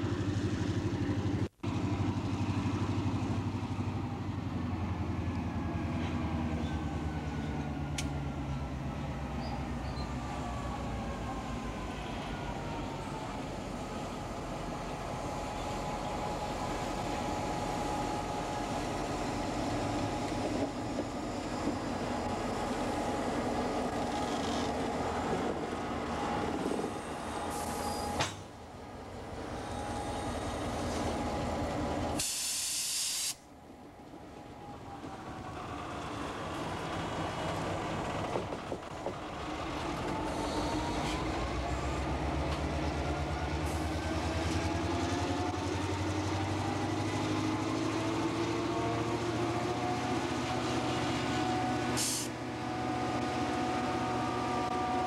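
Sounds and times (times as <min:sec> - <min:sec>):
loud hiss: 0:32.2 - 0:33.4.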